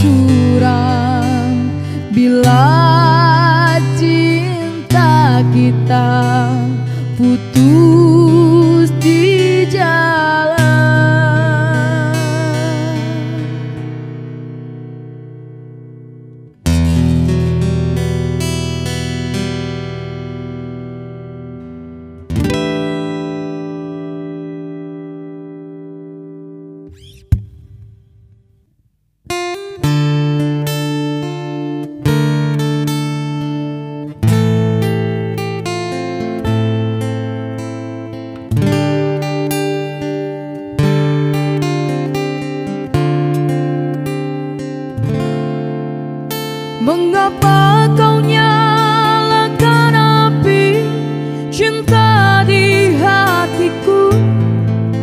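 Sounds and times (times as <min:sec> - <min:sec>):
acoustic guitar strumming chords: 0:00.0 - 0:28.7, 0:29.3 - 0:55.0.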